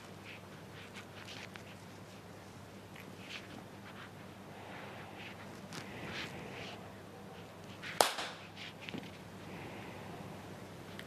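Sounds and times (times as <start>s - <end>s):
sharp hand clap: 8.0s - 8.4s.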